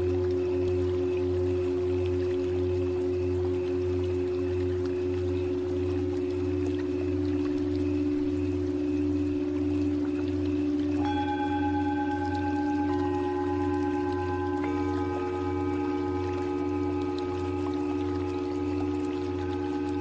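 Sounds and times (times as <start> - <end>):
higher bowl struck and ringing: 0.0 - 20.0
singing bowls droning: 0.0 - 20.0.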